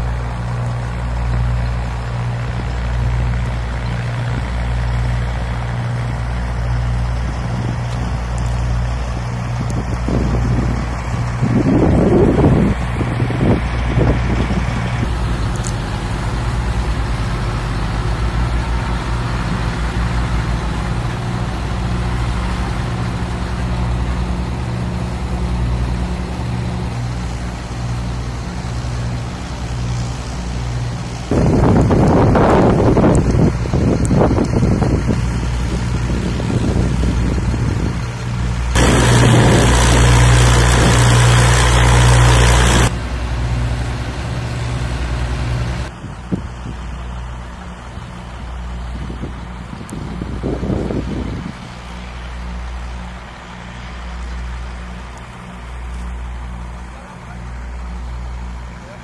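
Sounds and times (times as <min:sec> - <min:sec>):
loud noisy engine spells: 0:00.0 - 0:46.0
diesel engines idling: 0:00.0 - 0:59.0.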